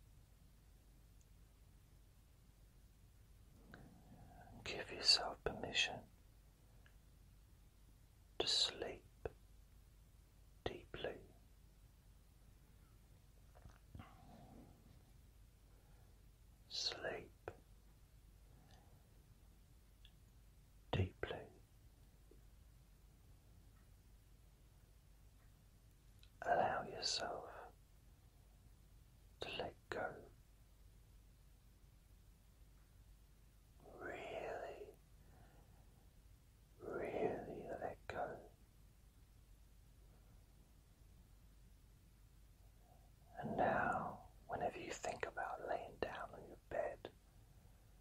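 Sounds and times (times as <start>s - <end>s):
man whispering: 3.7s - 6.2s, 8.4s - 9.4s, 10.6s - 11.5s, 16.6s - 17.7s, 20.9s - 21.7s, 26.2s - 27.8s, 29.4s - 30.4s, 33.8s - 35.3s, 36.8s - 38.6s, 42.8s - 47.2s.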